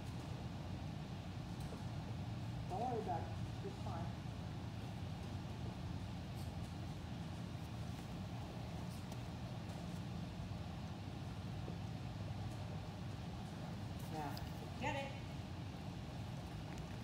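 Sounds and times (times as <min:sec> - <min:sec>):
ventilation hum: 0:00.0 - 0:17.0.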